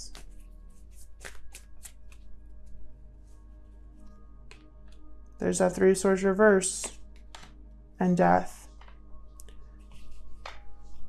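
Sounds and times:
cards snapping while shuffled: 0:00.0 - 0:00.4, 0:01.0 - 0:02.3, 0:06.8 - 0:07.6, 0:10.4 - 0:10.6
soft background music: 0:00.0 - 0:11.0.

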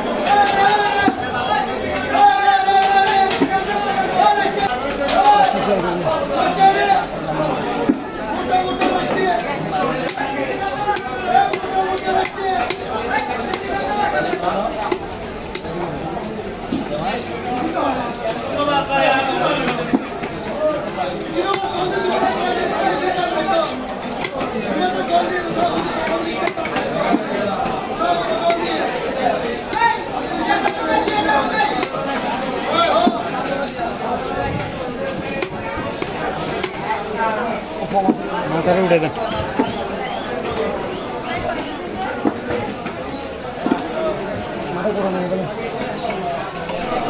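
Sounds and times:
market chatter: 0:00.0 - 0:47.0
people talking: 0:00.0 - 0:47.0.

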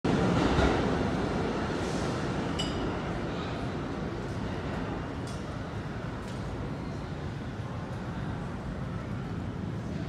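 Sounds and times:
subway train rumbling: 0:00.1 - 0:10.0.

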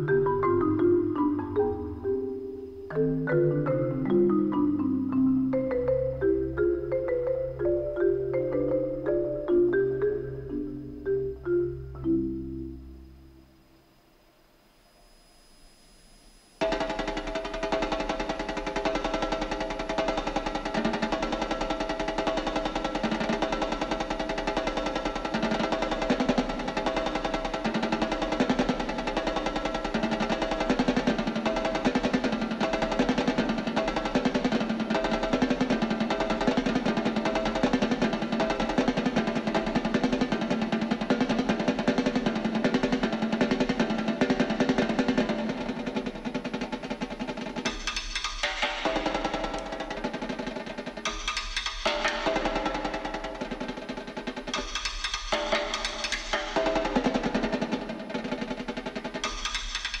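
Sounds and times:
snare drums played with sticks: 0:16.6 - 1:00.0.

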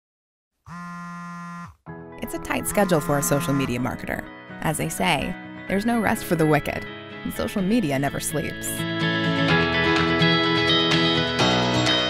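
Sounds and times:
smartphone alarm tone: 0:00.7 - 0:01.8, 0:02.5 - 0:03.8.

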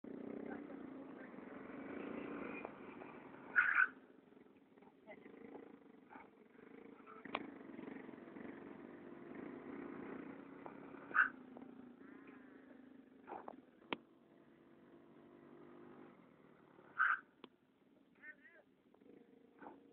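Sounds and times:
distant scooter engine: 0:00.0 - 0:19.9.

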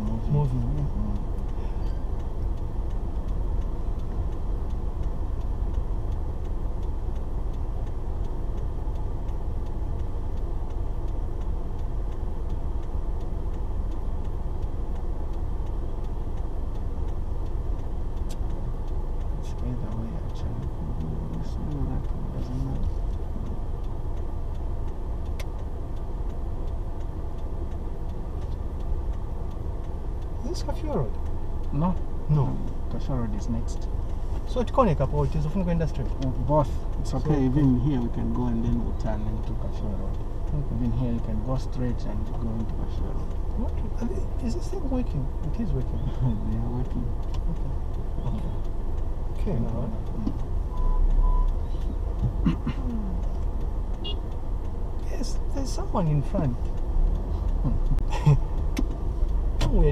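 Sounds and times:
car engine and road rumble: 0:00.0 - 0:59.9
faint clicks: 0:00.0 - 0:59.9.

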